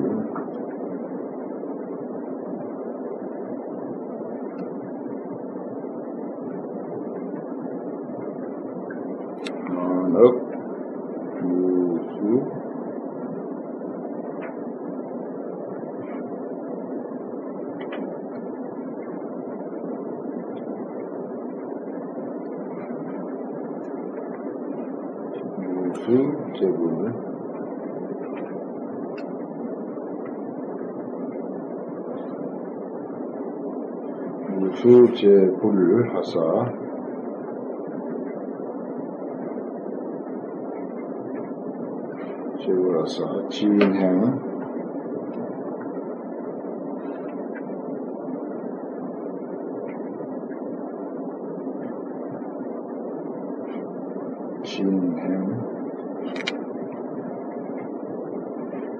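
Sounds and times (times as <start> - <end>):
hall background noise: 0.0 - 58.9
room noise hiss: 0.0 - 58.9.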